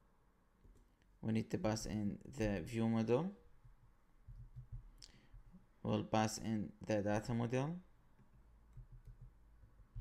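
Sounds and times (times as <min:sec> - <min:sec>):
person speaking: 0:01.2 - 0:03.5, 0:05.8 - 0:08.0
keyboard and mouse clicks: 0:04.3 - 0:05.2, 0:08.2 - 0:09.4.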